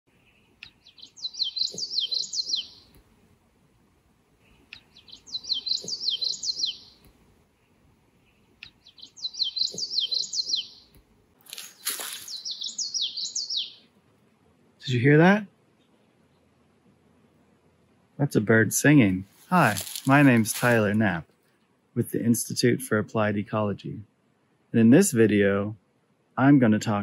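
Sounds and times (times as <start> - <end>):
bird singing rolling song: 0.1 - 3.0, 4.4 - 13.9
noisy rustle: 11.3 - 12.5, 19.2 - 21.1.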